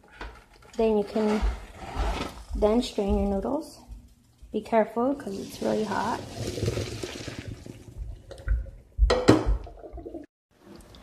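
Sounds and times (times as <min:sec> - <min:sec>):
water pouring into a colander: 0:05.2 - 0:07.9
thumps in a sink: 0:08.4 - 0:09.8.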